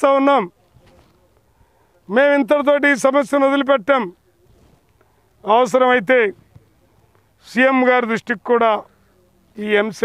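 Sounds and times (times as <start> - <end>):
man talking: 0.0 - 4.8, 5.4 - 10.0.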